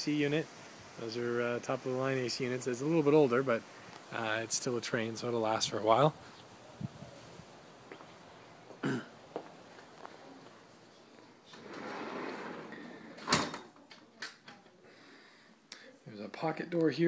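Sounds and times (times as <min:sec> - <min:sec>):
sliding glass door rolling: 0:11.5 - 0:13.7.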